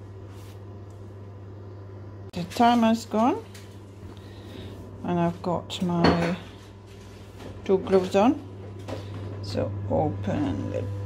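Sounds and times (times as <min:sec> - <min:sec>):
electric oven humming: 0:00.0 - 0:11.0.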